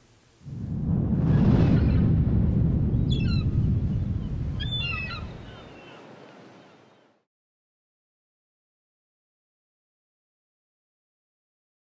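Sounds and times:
low rushing rumble: 0.4 - 5.6
bird calls: 3.1 - 3.6, 4.2 - 7.2.

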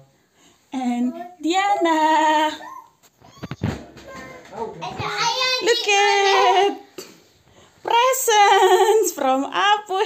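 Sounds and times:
child singing in high voice: 4.1 - 6.8.

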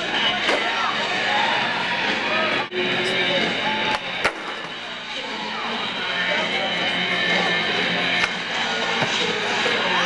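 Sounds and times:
crowd chatter: 0.0 - 10.0
music: 0.0 - 10.0.

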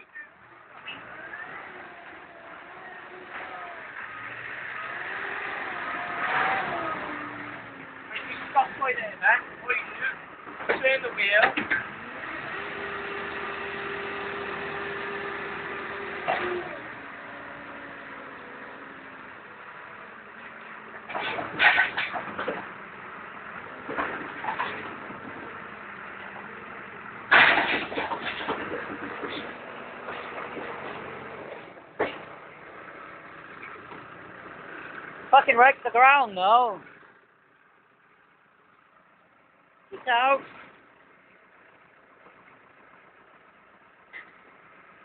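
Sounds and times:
diesel engine running: 0.0 - 45.0
machine clunk: 27.3 - 31.0.

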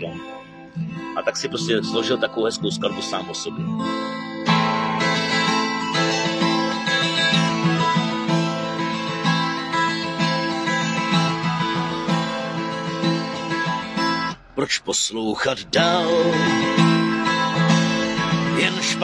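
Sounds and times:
acoustic guitar strummed and picked: 0.0 - 19.0.

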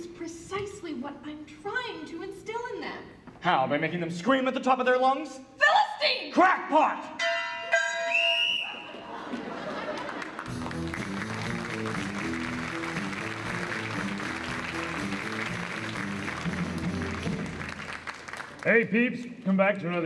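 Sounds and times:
audience applause: 9.0 - 18.9
band playing with low bass line: 10.5 - 17.7.

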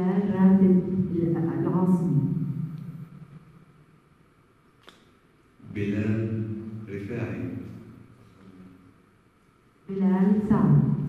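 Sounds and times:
man's voice: 5.6 - 7.7.

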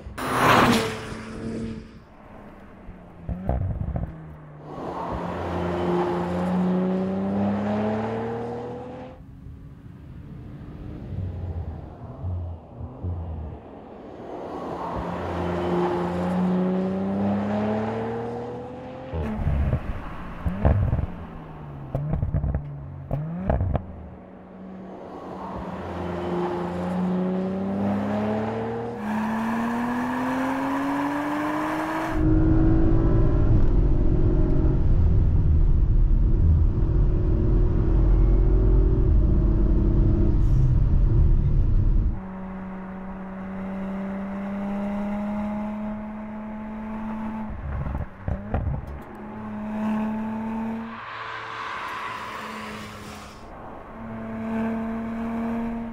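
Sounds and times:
car engine accelerating hard: 15.0 - 55.9
deep rumble inside car cabin: 32.2 - 42.2.

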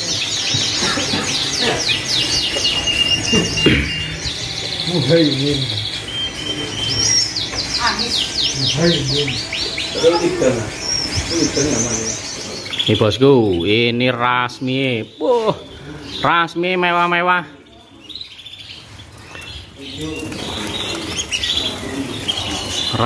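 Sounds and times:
fast bird trill: 0.0 - 16.6
canaries chirping and singing: 0.0 - 23.0.

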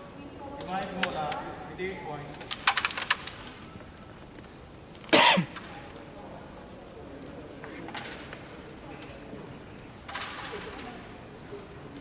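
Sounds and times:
faint background voices: 3.8 - 12.0
short cough: 5.1 - 5.6.

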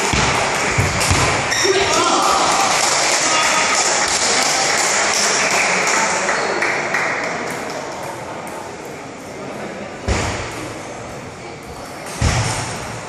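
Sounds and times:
spectators talking in echoing hall: 0.0 - 13.0.

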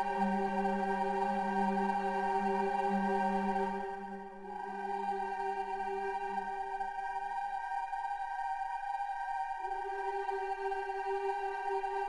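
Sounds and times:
choir holding sustained chord: 0.0 - 12.0.

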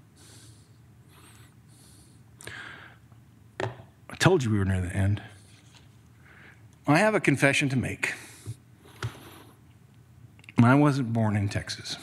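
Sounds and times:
low steady hum: 0.0 - 12.0
breaths into a microphone: 0.2 - 3.1.

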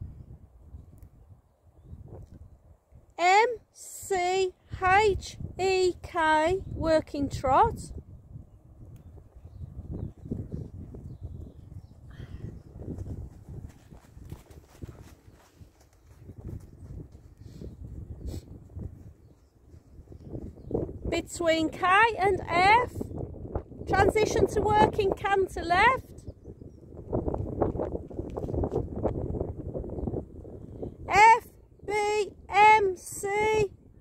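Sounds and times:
wind buffeting microphone: 0.0 - 3.1, 4.6 - 34.0
horse hoofbeats on soft ground: 9.4 - 21.0.

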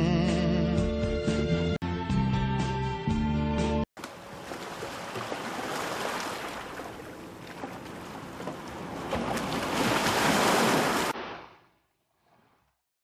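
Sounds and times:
sea waves washing in: 4.0 - 12.5
wind: 4.0 - 12.8.

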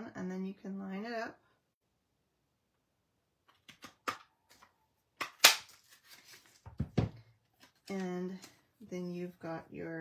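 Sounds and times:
paper punch snapping: 5.2 - 5.8.

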